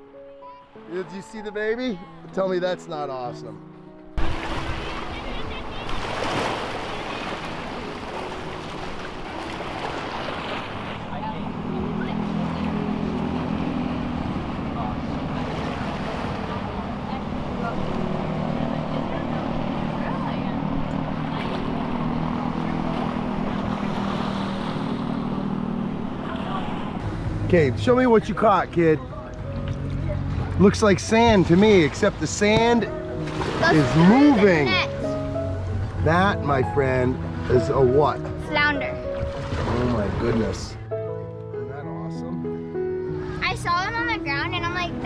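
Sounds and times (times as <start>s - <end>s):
boat motor humming: 0.0s - 45.0s
moving water: 4.2s - 40.8s.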